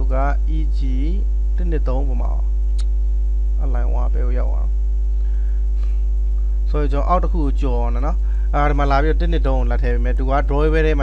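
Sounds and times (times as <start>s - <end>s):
man speaking: 0.0s - 2.5s, 3.6s - 4.7s, 6.7s - 11.0s
electrical mains hum: 0.0s - 11.0s.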